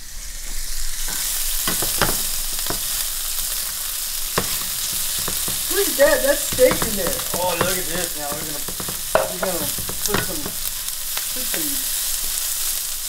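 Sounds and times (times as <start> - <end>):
meat sizzling in a frying pan: 0.0 - 13.0
spatula clicking against pan: 4.4 - 10.7.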